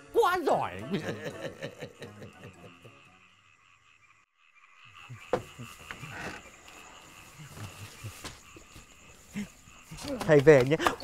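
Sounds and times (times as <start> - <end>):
music: 0.0 - 3.3
frogs croaking: 0.0 - 11.0
insects chirring: 0.0 - 11.0
laughter: 0.8 - 3.1.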